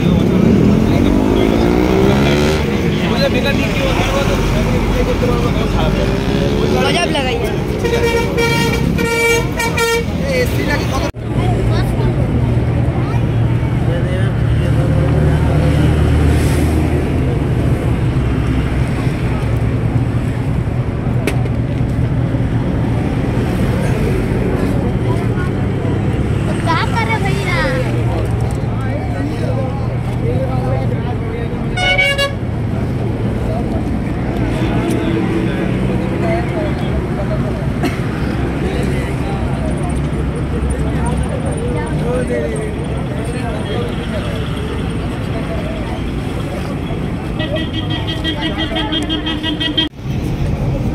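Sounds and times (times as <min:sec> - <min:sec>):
traffic rumble: 0:00.0 - 0:50.9
vehicle horn toot: 0:07.8 - 0:10.2, 0:31.8 - 0:32.4
scattered voices: 0:21.0 - 0:50.9.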